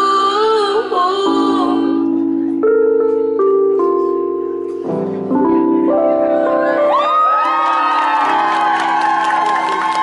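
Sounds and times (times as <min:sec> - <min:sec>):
keyboard chord ringing out: 0:01.3 - 0:07.0
audience cheering and whooping: 0:06.8 - 0:10.0.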